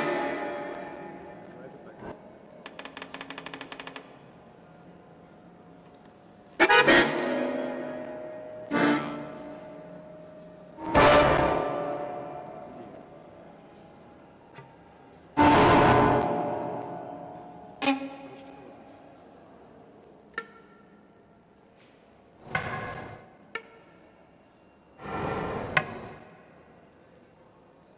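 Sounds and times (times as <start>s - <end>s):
sparse experimental music: 0.0s - 1.6s, 6.6s - 12.9s.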